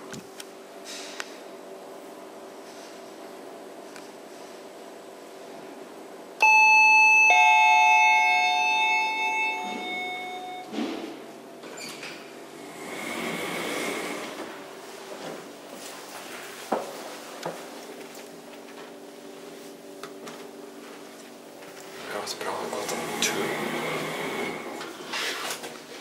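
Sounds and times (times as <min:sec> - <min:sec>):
elevator chime ding-dong: 0:06.4 - 0:10.7.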